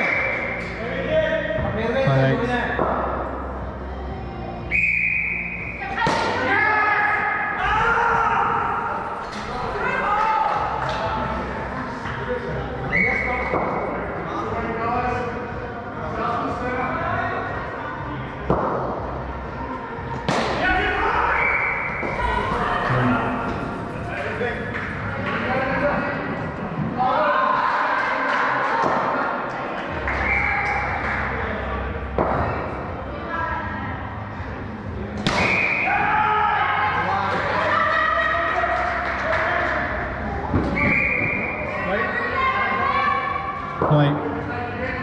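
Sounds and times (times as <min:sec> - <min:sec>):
background music: 0:00.0 - 0:45.0
voices in echoing hall: 0:00.0 - 0:45.0
short high tone: 0:22.2 - 0:24.0.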